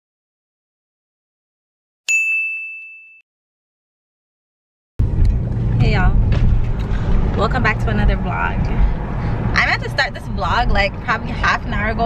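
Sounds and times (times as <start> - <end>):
bright bell-like ding: 2.1 - 3.2.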